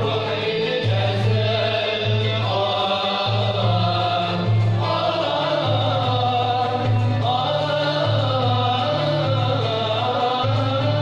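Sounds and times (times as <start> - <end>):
violins and cello: 0.0 - 11.0
voices singing together: 0.0 - 11.0.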